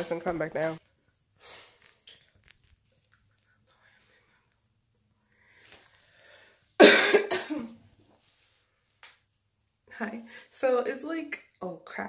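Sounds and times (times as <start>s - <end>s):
woman coughing: 6.8s - 7.8s.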